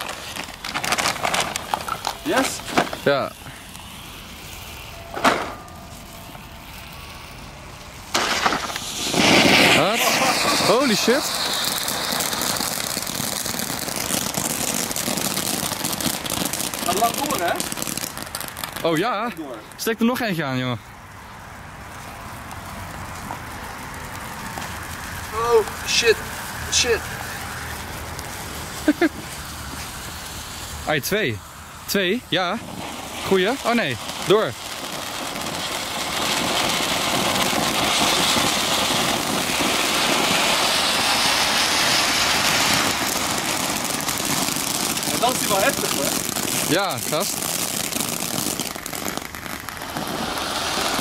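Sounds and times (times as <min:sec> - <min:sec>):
firework spraying sparks hiss: 0:00.0 - 0:19.8, 0:21.4 - 0:51.0.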